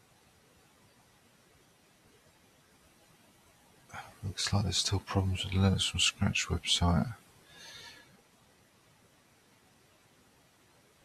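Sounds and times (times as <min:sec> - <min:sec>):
faint breathy hiss: 0:03.8 - 0:08.5
man speaking: 0:04.0 - 0:07.2.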